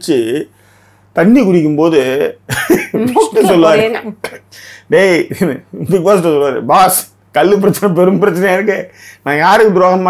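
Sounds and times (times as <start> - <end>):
man speaking: 1.2 - 10.0.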